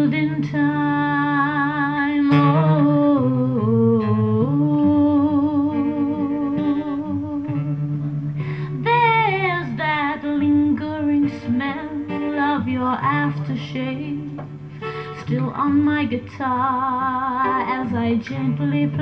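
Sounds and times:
woman humming a melody: 0:00.0 - 0:14.4
strummed acoustic guitar: 0:00.0 - 0:19.0.

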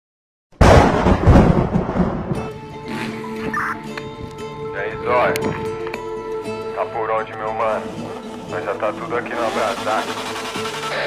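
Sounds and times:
thunder crash and rumble: 0:00.6 - 0:02.6.

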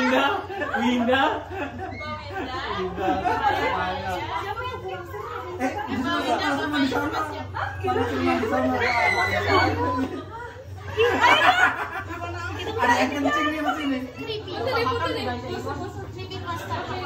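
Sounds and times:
overlapping indoor chatter: 0:00.0 - 0:17.0.

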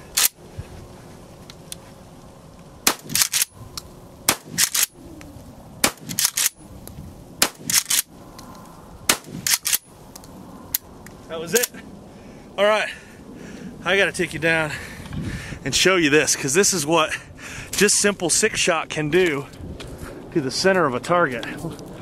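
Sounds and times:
shotgun shots: 0:02.8 - 0:03.5, 0:04.3 - 0:04.9, 0:05.8 - 0:06.5, 0:07.4 - 0:08.0, 0:09.1 - 0:09.8.

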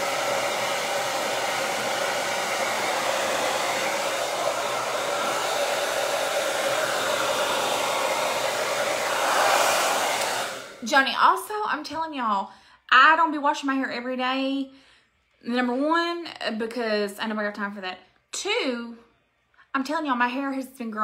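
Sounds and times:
hair dryer running: 0:00.0 - 0:10.9.

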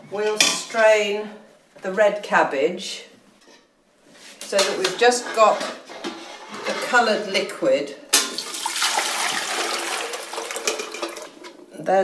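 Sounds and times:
liquid pouring into steel bowl: 0:08.3 - 0:11.4.

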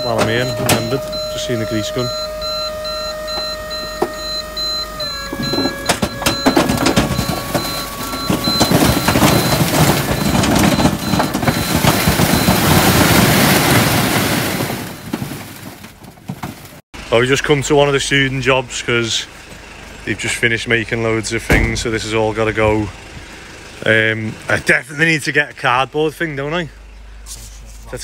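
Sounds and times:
hydraulic pump whining: 0:00.0 - 0:13.0, 0:19.2 - 0:24.5
bricks and rubble sliding out: 0:05.4 - 0:16.8.

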